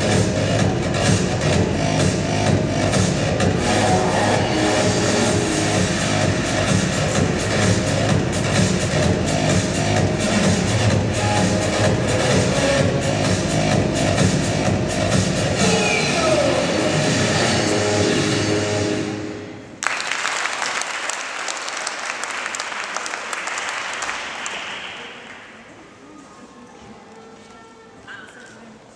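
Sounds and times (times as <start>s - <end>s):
music with steady beat: 0.0s - 18.5s
audience applause: 19.8s - 25.6s.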